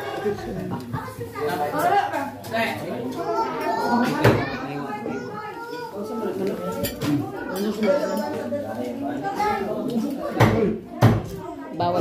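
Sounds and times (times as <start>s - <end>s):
children's voices and chatter: 0.0s - 12.0s.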